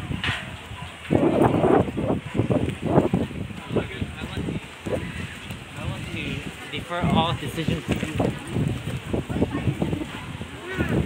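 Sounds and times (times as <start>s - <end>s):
microphone rumbling and crackling: 0.0s - 11.0s.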